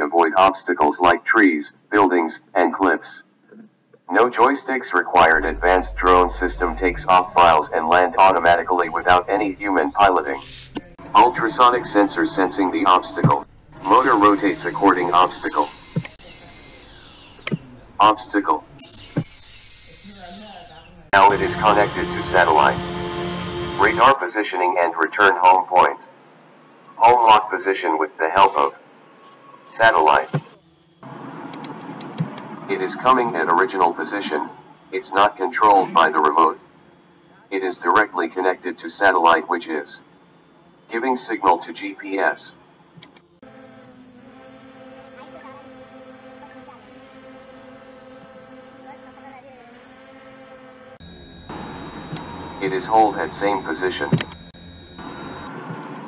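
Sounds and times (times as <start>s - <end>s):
motor whine: 5.2s - 24.2s, 30.0s - 56.0s.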